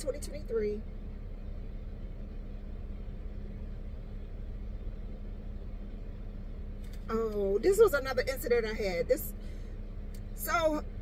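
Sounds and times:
car idling hum inside cabin: 0.0 - 11.0.

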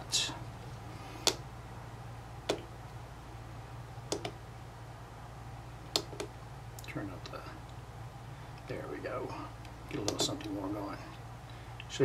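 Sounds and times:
low steady hum: 0.0 - 12.0
sharp clicks of oscilloscope controls: 4.1 - 4.4, 5.9 - 7.0.

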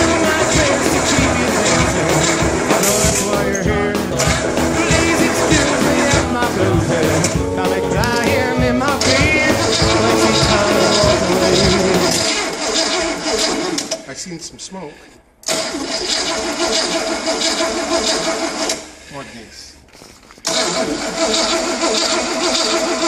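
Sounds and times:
rock and roll song: 0.0 - 12.3
engine cranking without starting: 0.0 - 14.1, 15.4 - 19.0, 20.4 - 23.0.

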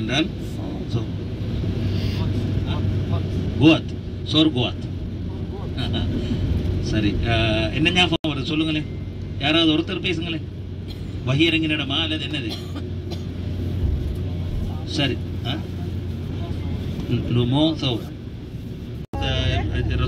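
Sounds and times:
bus engine and road rumble: 0.0 - 20.0.

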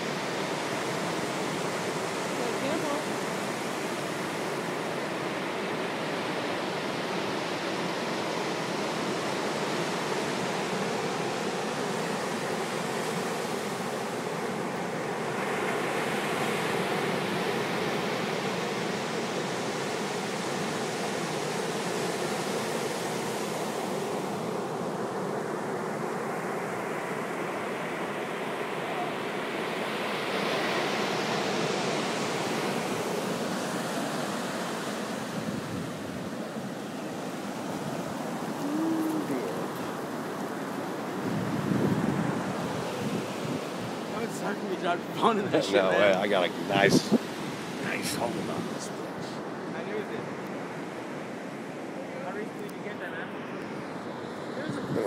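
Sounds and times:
ocean surf breaking on sand: 0.0 - 55.0.

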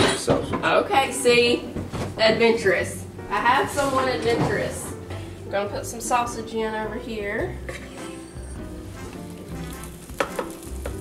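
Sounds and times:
soft background music: 0.0 - 11.0
sausage sizzling: 8.1 - 11.0.

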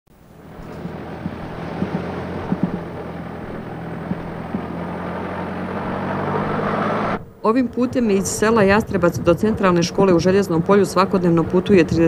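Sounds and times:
tyres on gravel road: 0.1 - 7.4
car engine hum: 0.1 - 12.0
short knocks: 0.6 - 5.0.

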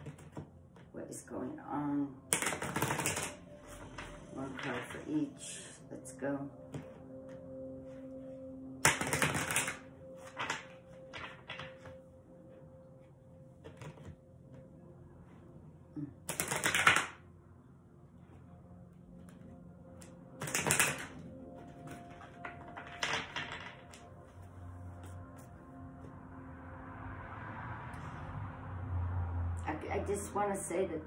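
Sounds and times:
cards being riffle-shuffled: 16.3 - 17.1, 20.4 - 24.4.

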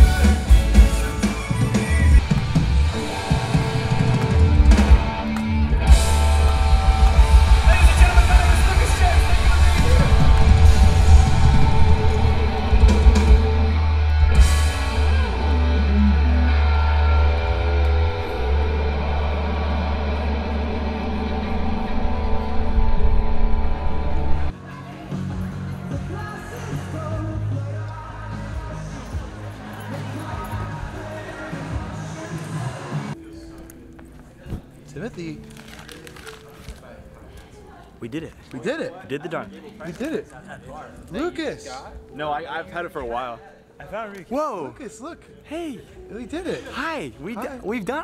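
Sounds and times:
live rock band playing: 0.0 - 22.6.

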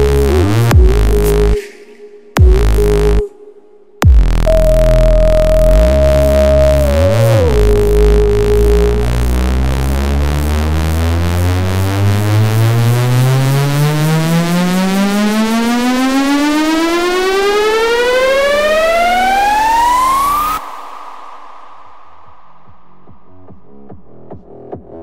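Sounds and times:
synthesizer riser: 0.0 - 23.4.

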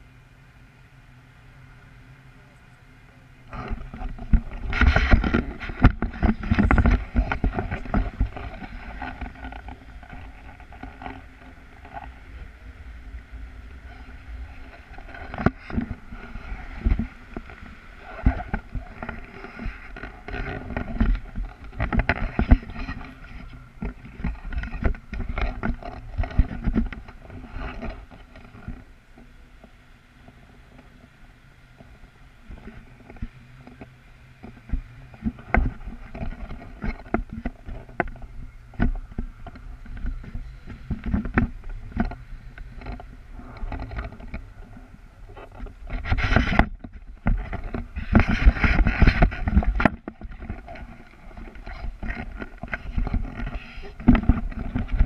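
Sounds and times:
wind buffeting microphone: 2.4 - 28.9, 29.6 - 55.0
camera thumps and knocks: 3.5 - 11.1, 45.5 - 55.0.

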